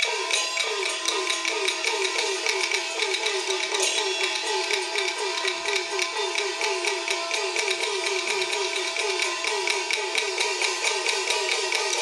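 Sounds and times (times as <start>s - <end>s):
gong strokes sliding down in pitch: 0.0s - 12.0s.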